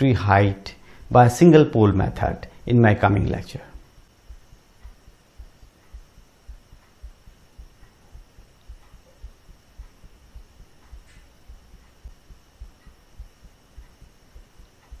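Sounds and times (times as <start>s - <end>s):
faint high whine and hiss: 0.0s - 15.0s
soft low thumps: 3.8s - 15.0s.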